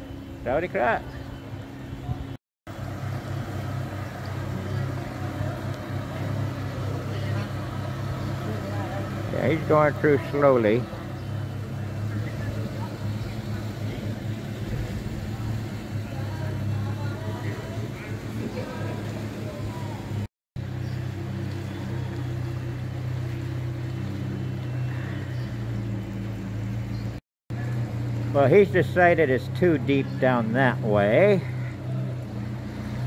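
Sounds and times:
car engine running at low revs: 0.0 - 33.0.

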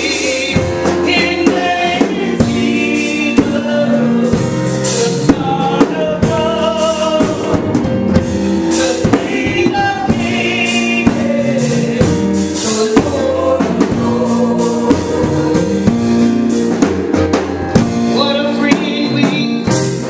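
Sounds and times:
drum kit beat: 0.0 - 20.0
gospel singing: 0.0 - 20.0.

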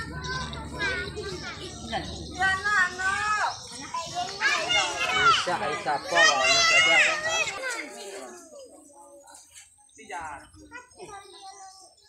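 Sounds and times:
voices chattering and calling: 0.0 - 12.0.

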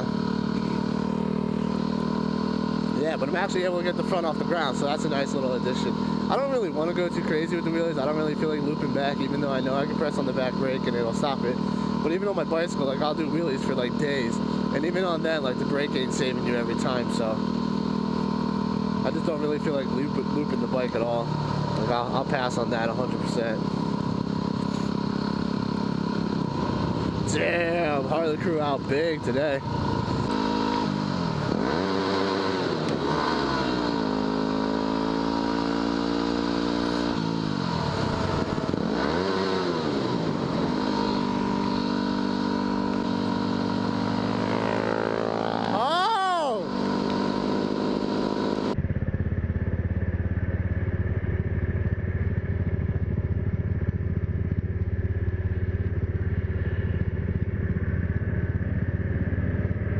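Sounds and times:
motorcycle engine revving: 0.0 - 59.9
steady low rumble: 48.7 - 59.9.

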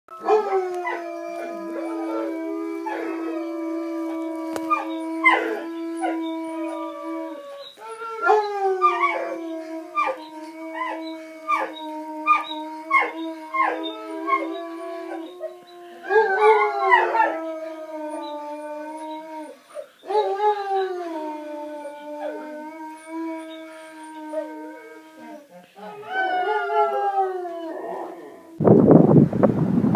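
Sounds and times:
long drawn-out howls: 0.1 - 28.6.

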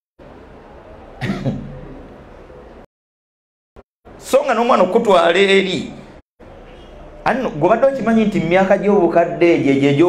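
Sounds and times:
microphone hiss: 0.2 - 2.8, 4.1 - 10.0.

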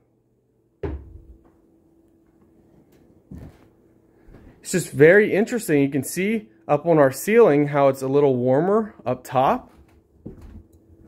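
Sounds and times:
faint steady hum: 0.0 - 11.0
dull thumps: 0.8 - 1.6.

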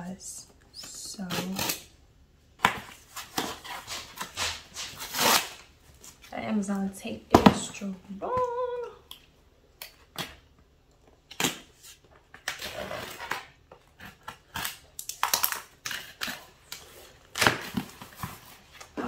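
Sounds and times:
packing tape ripping: 2.9 - 5.7, 11.3 - 18.4.

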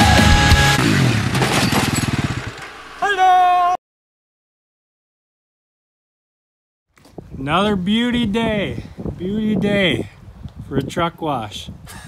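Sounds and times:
quad engine running: 0.0 - 3.0.

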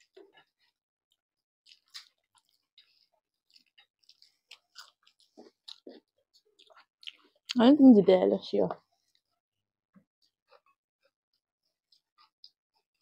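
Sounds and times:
soft chewing and mouth noises: 0.0 - 7.7, 8.7 - 13.0.

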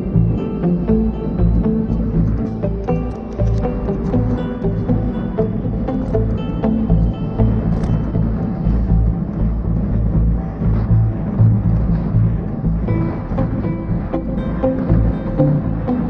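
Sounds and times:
background music with pulsing beat: 0.0 - 16.0.

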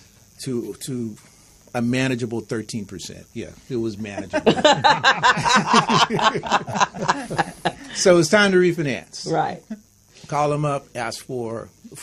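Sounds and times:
people laughing: 4.1 - 8.0.

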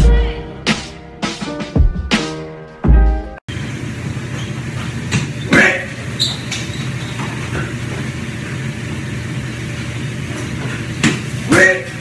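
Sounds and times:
low mechanical hum: 3.5 - 12.0.

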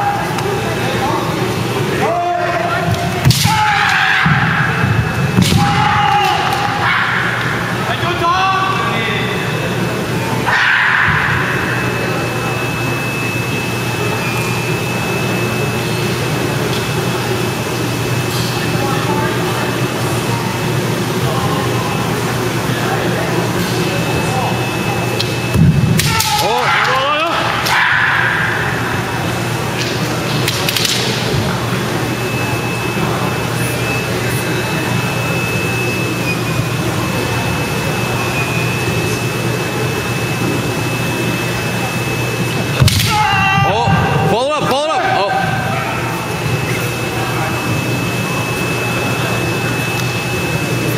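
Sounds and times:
loud shouts: 2.0 - 8.9, 10.4 - 12.0, 25.9 - 29.0, 42.9 - 46.1.

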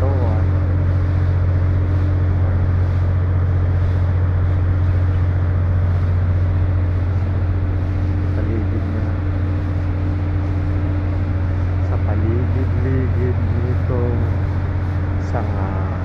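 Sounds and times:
low machine hum: 0.0 - 16.0.

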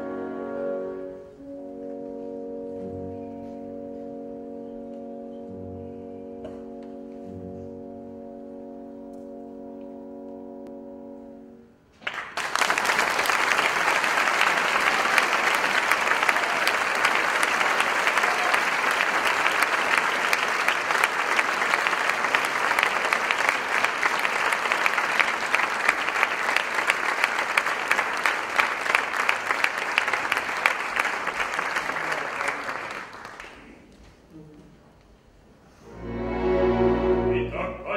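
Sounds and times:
audience applauding: 12.0 - 34.0.

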